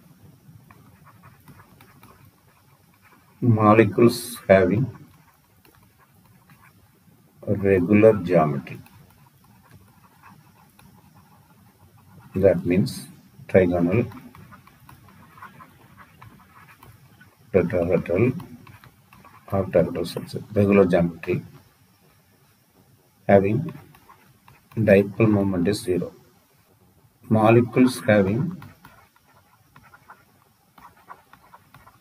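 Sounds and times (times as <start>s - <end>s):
low room noise: 0.0s - 32.0s
low steady hiss: 0.0s - 32.0s
stylus scratching on tablet: 0.0s - 32.0s
stylus ticking on tablet screen: 13.5s - 20.9s.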